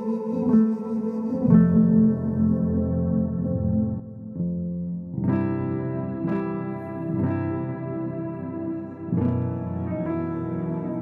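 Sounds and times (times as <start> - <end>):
electronic keyboard chords: 0.0 - 11.0.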